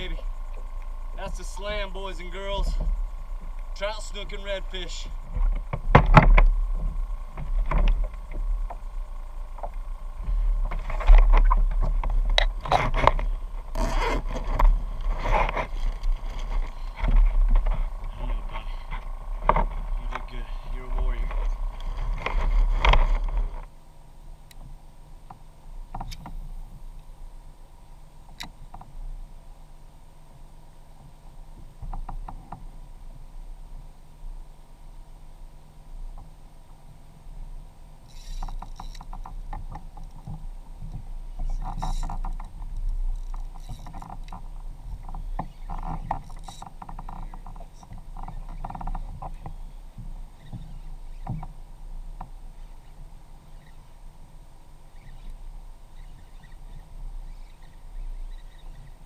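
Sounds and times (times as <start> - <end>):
steady hum: 0.0 - 59.0
knocks and scrapes on plastic kayak: 9.6 - 23.7
faint clicks: 24.4 - 27.1, 28.3 - 29.0.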